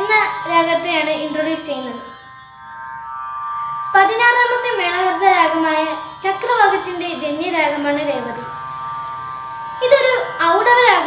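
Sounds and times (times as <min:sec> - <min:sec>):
sustained music drone: 0:00.0 - 0:11.0.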